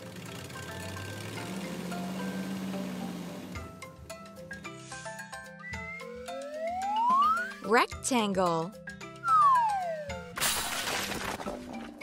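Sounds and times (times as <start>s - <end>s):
light background music: 0.0s - 12.0s
cartoon crash and shatter: 10.4s - 11.6s.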